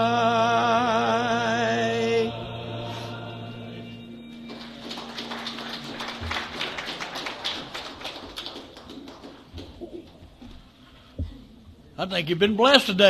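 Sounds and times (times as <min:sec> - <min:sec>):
audience clapping: 0:04.3 - 0:10.4.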